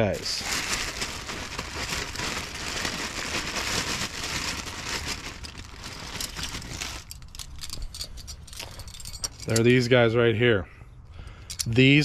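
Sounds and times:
plastic and cardboard rustling: 0.0s - 8.0s
light metal clinks: 7.1s - 9.8s.

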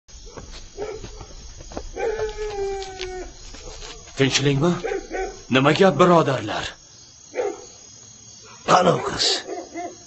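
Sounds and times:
dog howling: 1.9s - 5.5s.

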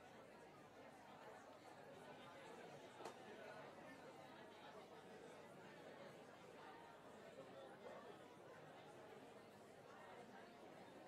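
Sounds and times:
chatter of many people: 0.0s - 11.0s.

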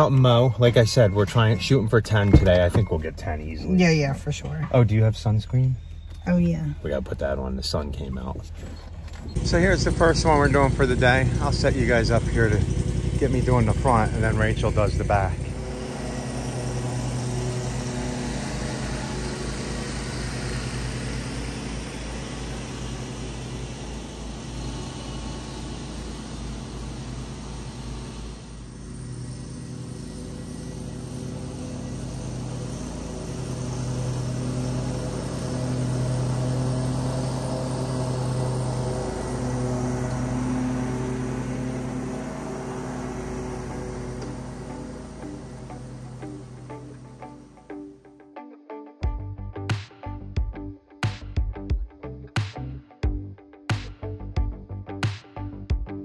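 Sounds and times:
background music with low notes: 44.5s - 56.0s.

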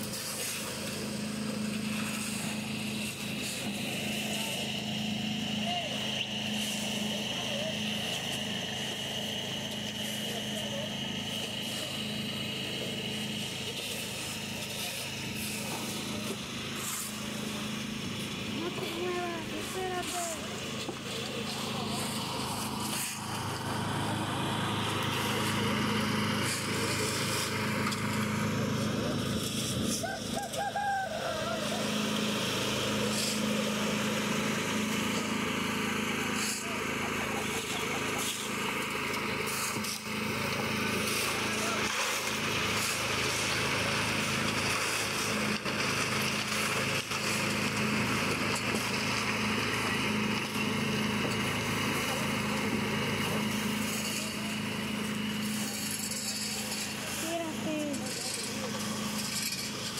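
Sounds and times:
small gasoline engine running: 0.0s - 59.9s
indistinct voices: 9.1s - 29.2s.

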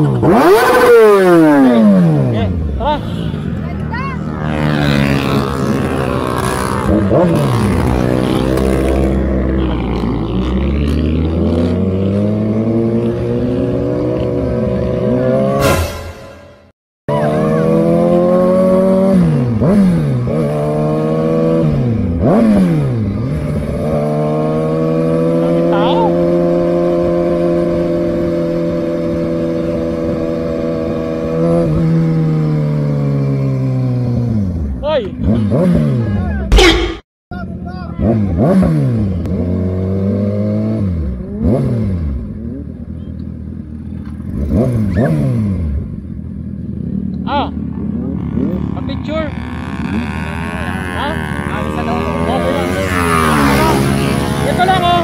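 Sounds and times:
motorcycle engine revving: 0.0s - 37.0s, 37.9s - 55.0s.

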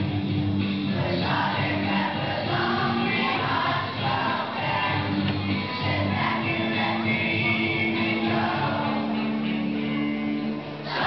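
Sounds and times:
children's choir singing: 0.9s - 9.6s.

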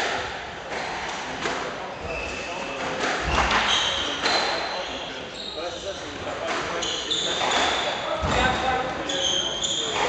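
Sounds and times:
shoes squeaking on wooden floor: 1.9s - 6.0s, 6.6s - 10.0s.

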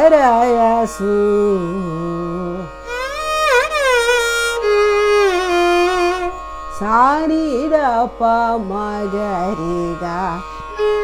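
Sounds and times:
violin playing sliding notes: 1.0s - 7.6s, 8.8s - 11.0s.

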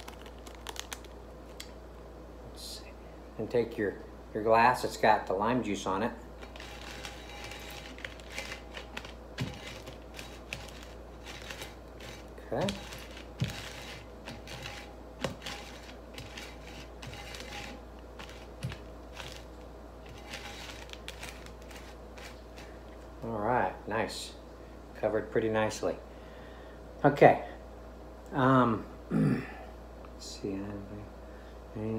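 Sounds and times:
low room hum: 0.0s - 31.9s.

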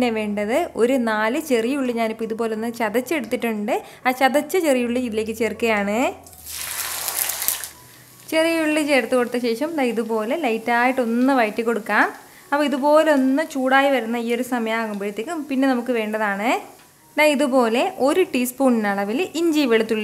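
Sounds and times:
woman talking: 0.0s - 6.2s, 8.3s - 20.0s
shallots sizzling in hot oil: 6.2s - 20.0s.

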